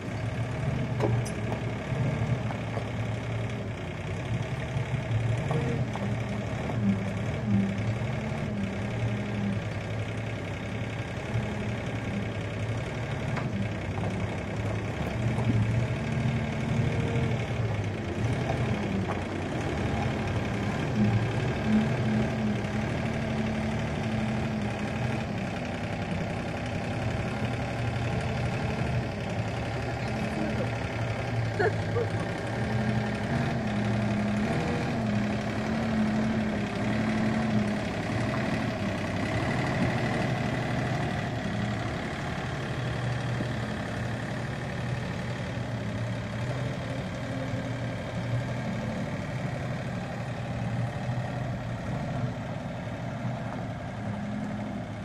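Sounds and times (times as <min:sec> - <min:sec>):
loader diesel engine running: 0:00.0 - 0:55.0.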